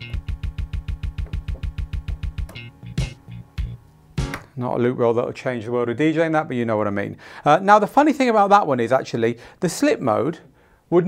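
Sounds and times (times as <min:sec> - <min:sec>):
stuttering looped music beat: 0:00.0 - 0:04.4.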